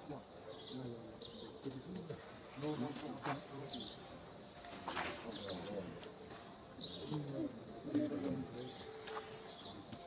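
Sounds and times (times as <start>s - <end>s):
indistinct background voices: 0.0s - 10.0s
insects buzzing: 0.0s - 10.0s.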